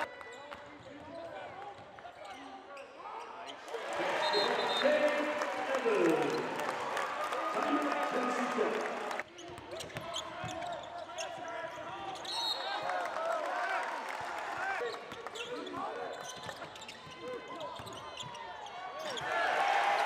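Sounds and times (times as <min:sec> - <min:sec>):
shoes squeaking on hardwood court: 0:09.4 - 0:12.5, 0:15.3 - 0:19.2.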